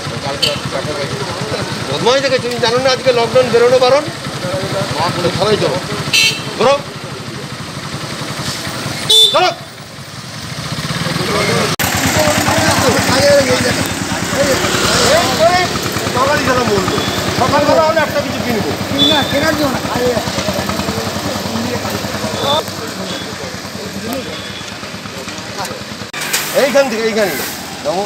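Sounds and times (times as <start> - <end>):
people talking: 0.0 - 7.6, 11.0 - 28.0
vehicle engine idling: 0.0 - 28.0.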